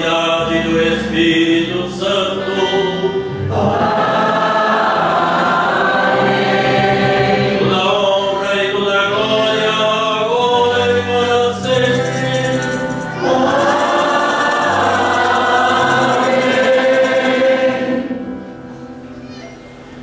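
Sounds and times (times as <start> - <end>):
congregation and choir singing: 0.0 - 18.7.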